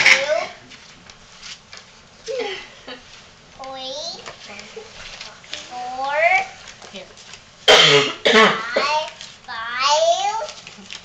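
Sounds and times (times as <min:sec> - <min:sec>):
person coughing: 0:07.7 - 0:08.9.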